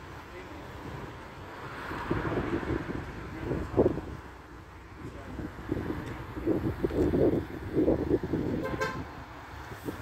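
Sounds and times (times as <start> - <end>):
street background noise: 0.0 - 10.0
car horn toot: 8.6 - 9.1.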